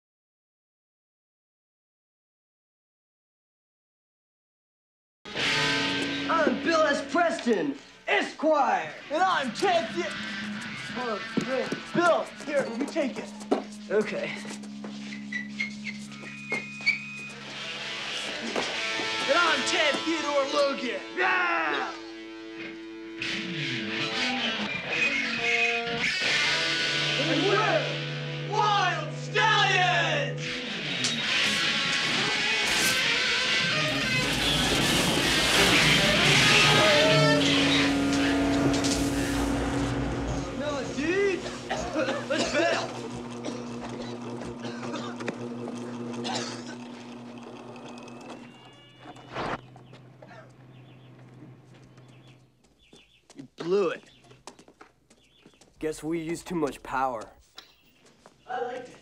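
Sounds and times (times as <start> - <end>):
electric guitars through amplifier: 5.3 - 8.0, 8.8 - 52.5
loud burst of noise: 31.3 - 43.8
amplifier hum: 33.7 - 52.1.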